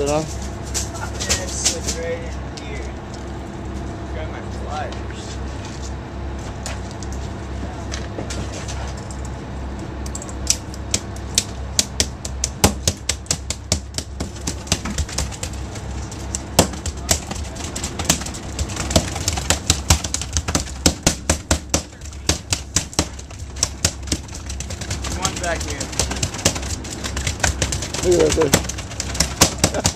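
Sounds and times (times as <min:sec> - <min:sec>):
boat engine hum: 0:00.0 - 0:29.9
fish tails knocking on deck: 0:11.8 - 0:29.9.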